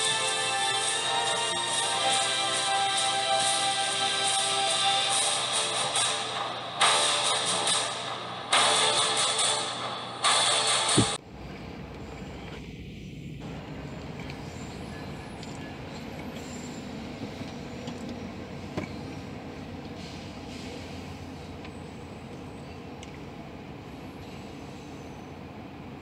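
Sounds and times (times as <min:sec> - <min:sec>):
train rumbling past: 0:00.0 - 0:26.0.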